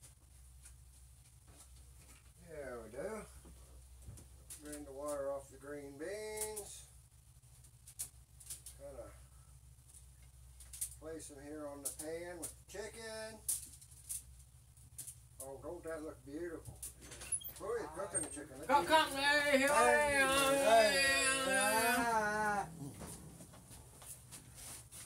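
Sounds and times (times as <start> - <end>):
steady low hum: 0.0 - 25.0
indistinct talk: 17.6 - 23.0.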